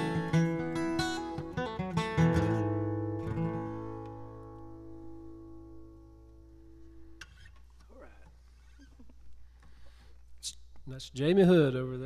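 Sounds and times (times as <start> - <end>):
acoustic guitar chord ringing: 0.0 - 7.5.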